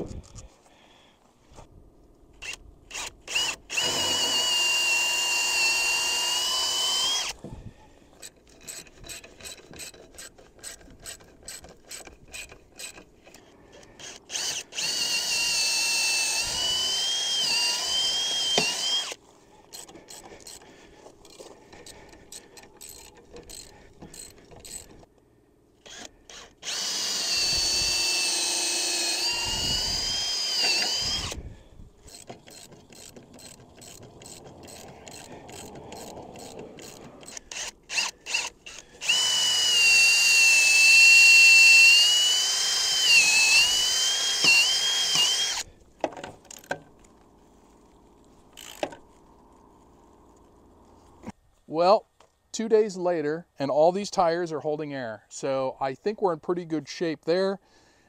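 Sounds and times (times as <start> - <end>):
cordless drill whining: 2.4 - 25.1, 25.8 - 45.8
socket ratchet clicking rapidly: 32.0 - 37.8.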